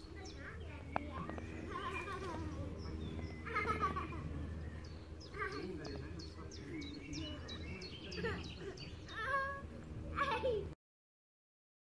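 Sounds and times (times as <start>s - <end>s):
faint outdoor background: 0.0s - 10.8s.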